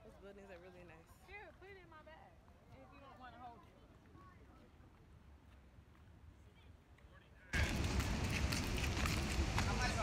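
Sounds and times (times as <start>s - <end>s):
loud outdoor noise with voices: 0.0s - 10.0s
people talking: 9.6s - 10.0s.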